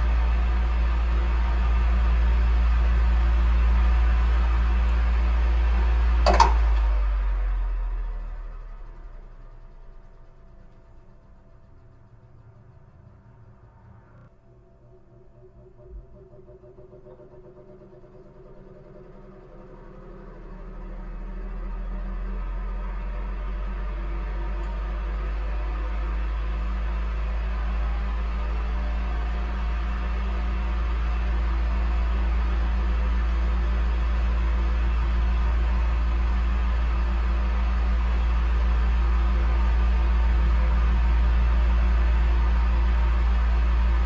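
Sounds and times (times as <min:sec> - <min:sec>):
low steady drone: 0:00.0 - 0:44.0.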